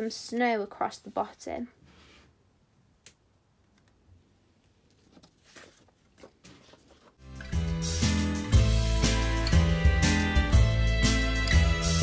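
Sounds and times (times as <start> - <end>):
paper and card rustling: 4.8 - 7.2
background music: 7.2 - 12.0.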